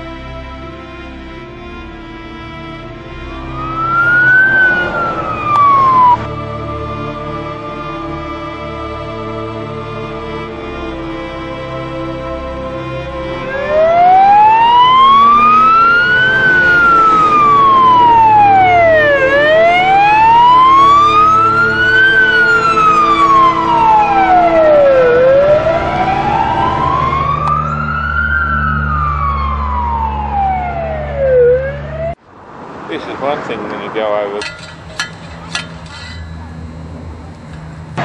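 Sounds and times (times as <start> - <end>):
police siren wailing: 1.1 - 32.2.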